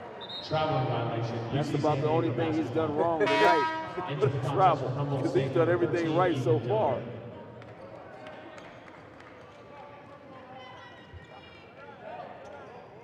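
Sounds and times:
crowd murmur: 1.1s - 13.0s.

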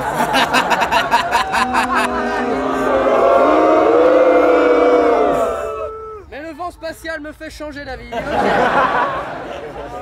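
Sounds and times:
group singing chord: 1.5s - 5.4s.

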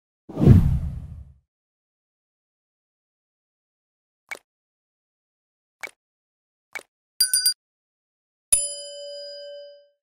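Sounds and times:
deep whoosh: 0.3s - 1.3s.

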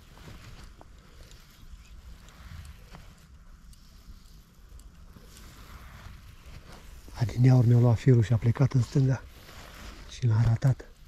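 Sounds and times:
faint ticks: 0.0s - 7.0s.

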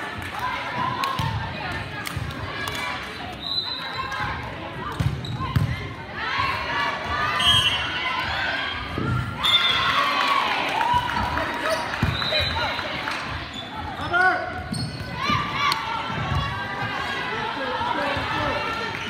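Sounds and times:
players' voices and calls: 0.0s - 19.0s
volleyball thumps: 4.8s - 5.9s.

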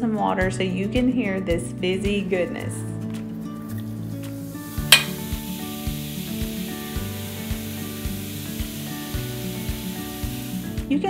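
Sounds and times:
background music with steady beat: 0.0s - 11.0s
bath salts fizzing in water: 4.0s - 10.9s
sharp tap: 4.9s - 5.3s.

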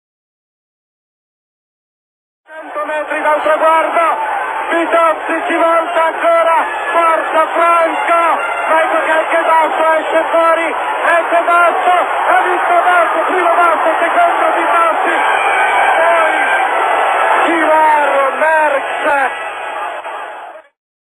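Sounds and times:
man commentating: 2.5s - 19.4s
crowd noise: 2.5s - 20.8s.

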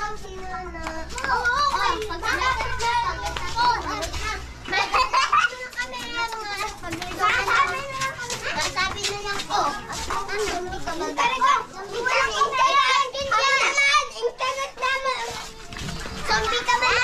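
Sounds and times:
children chattering and calling out: 0.0s - 17.0s.

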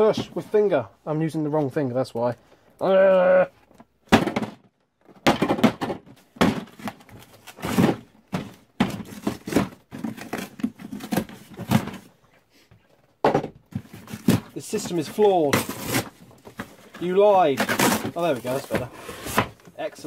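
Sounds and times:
cardboard tearing: 13.8s - 19.6s.

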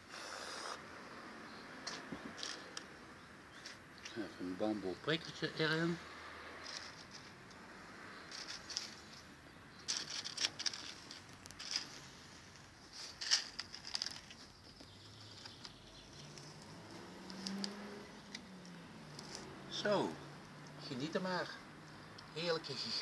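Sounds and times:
paper plates rustling: 12.9s - 14.6s.

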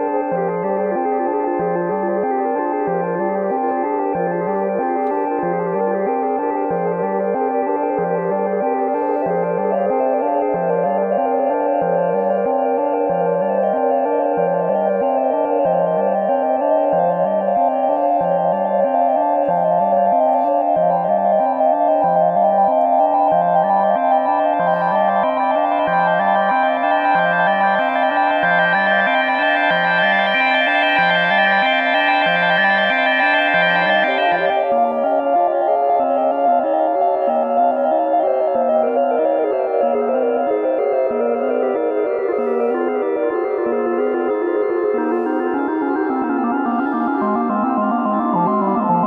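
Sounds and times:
sustained synth drone: 17.4s - 38.4s.

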